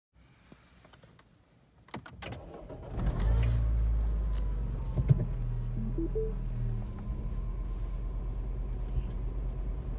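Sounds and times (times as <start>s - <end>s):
car engine starting and running: 2.3s - 9.9s.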